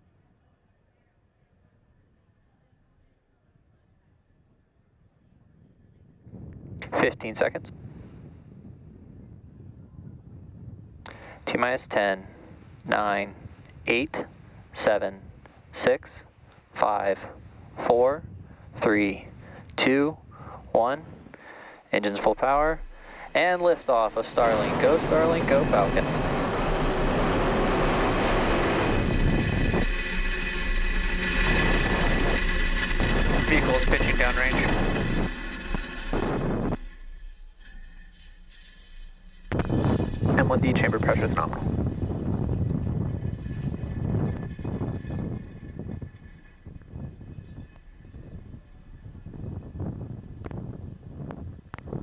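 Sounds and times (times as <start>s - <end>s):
rocket engines roaring: 19.0s - 52.0s
steady high tones: 22.1s - 49.1s.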